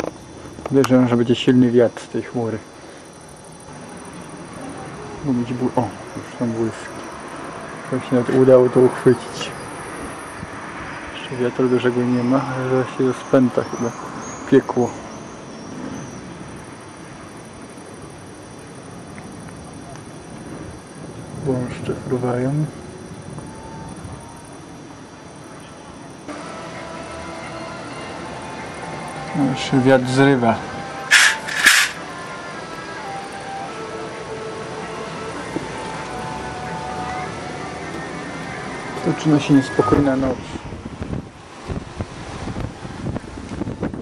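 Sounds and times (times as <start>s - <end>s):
microphone hiss: 0.0s - 10.5s, 11.4s - 44.0s
faint music of held notes: 21.5s - 31.1s, 32.0s - 41.0s.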